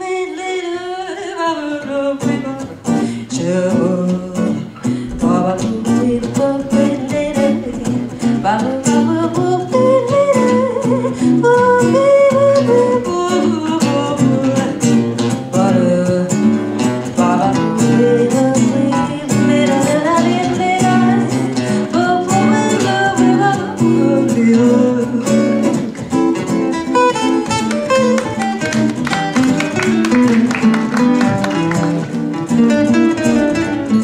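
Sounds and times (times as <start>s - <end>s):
woman singing: 0.0s - 30.4s
acoustic guitars playing chords: 0.0s - 34.0s.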